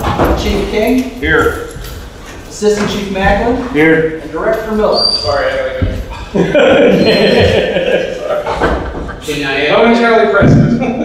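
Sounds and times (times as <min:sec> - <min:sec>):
people talking: 0:00.0 - 0:01.7, 0:02.5 - 0:11.0
man speaking: 0:00.2 - 0:01.8, 0:02.5 - 0:08.4, 0:09.2 - 0:11.0.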